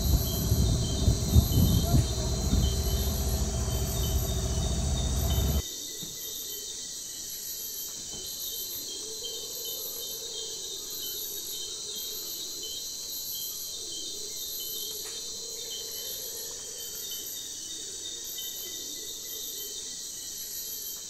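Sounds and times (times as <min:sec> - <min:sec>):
insects buzzing: 0:00.0 - 0:05.6.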